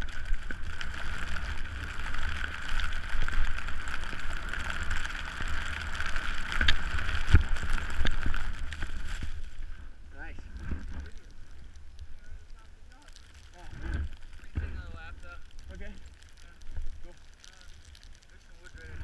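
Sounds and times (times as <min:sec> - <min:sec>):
skis hissing through powder snow: 0:00.0 - 0:09.8.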